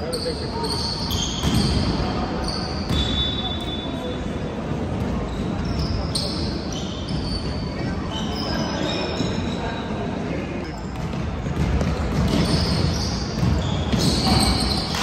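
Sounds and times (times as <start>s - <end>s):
sneakers squeaking on court: 0.0s - 10.0s, 10.7s - 15.0s
basketball bouncing: 10.8s - 15.0s.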